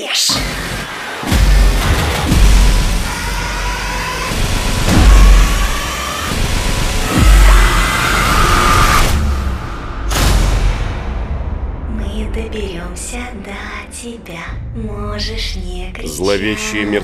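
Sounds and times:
screeching rising tones: 0.3s - 9.9s
deep booming bass hits: 0.4s - 13.9s.

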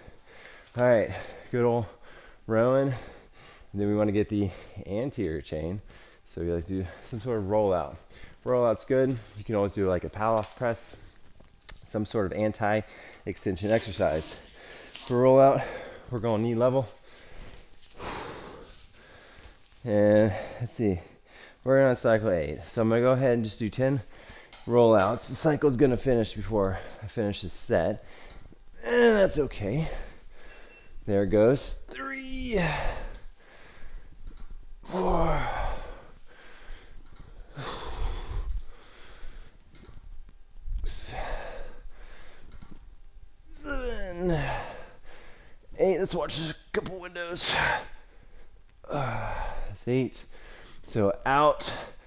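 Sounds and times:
man speaking: 24.7s - 28.1s, 28.8s - 30.2s, 31.0s - 33.2s, 43.5s - 44.9s, 45.7s - 48.0s.

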